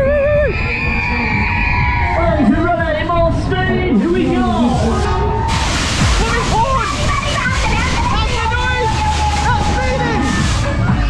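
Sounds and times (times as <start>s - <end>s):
wind rushing over microphone: 0.0s - 10.6s.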